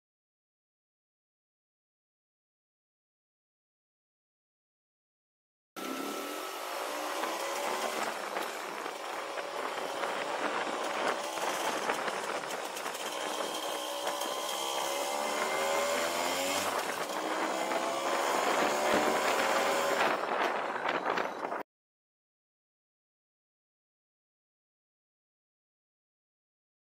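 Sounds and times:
scooter engine accelerating: 5.8s - 21.6s
wind on microphone: 5.8s - 21.6s.

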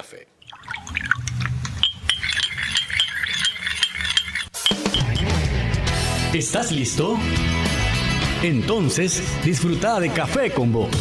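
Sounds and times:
coffee pouring into mug: 0.4s - 4.5s
light clinking: 1.1s - 5.2s
music jingle with guitar: 4.6s - 9.5s.

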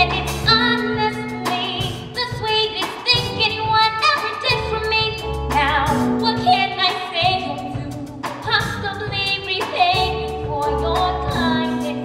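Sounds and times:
instrumental accompaniment: 0.0s - 12.0s
woman singing with vibrato: 0.0s - 12.0s.

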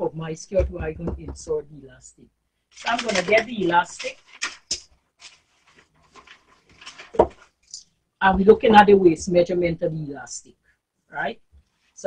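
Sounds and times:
packet rustling and clicking: 2.7s - 7.6s.

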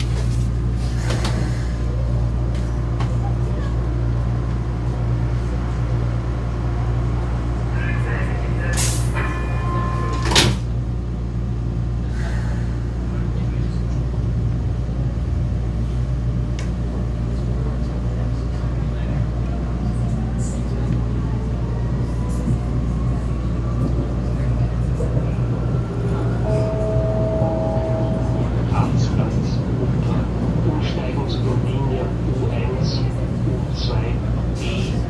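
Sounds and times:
metro train rumble and hum: 0.0s - 35.0s
rising train whine: 0.0s - 35.0s
train doors clacking shut: 9.8s - 10.7s.

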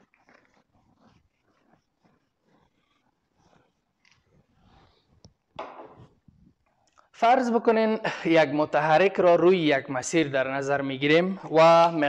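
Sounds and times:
eraser rubbing on whiteboard: 0.0s - 6.8s.

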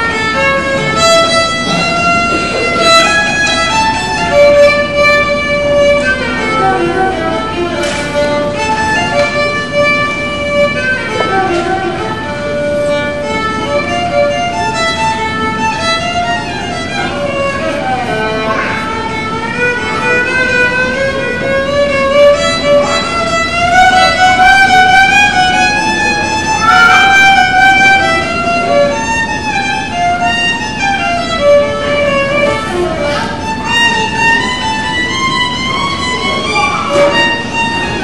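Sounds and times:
solo violin melody: 0.0s - 38.0s.

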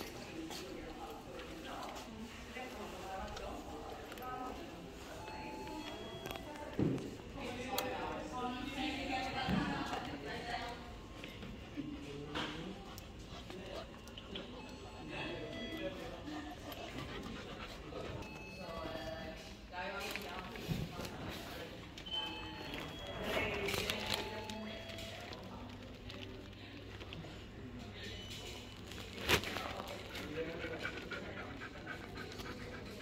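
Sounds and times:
busy background noise: 0.0s - 33.0s.

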